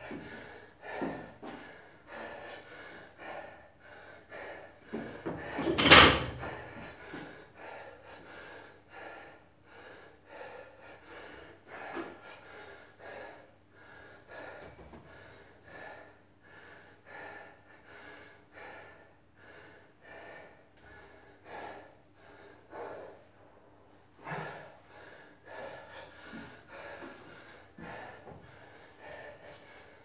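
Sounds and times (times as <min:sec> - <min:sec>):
man panting hard: 0:00.0 - 0:30.0.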